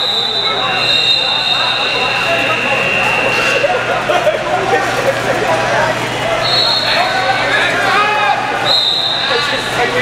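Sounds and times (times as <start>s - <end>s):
people shouting in echoing gym: 6.4s - 10.0s.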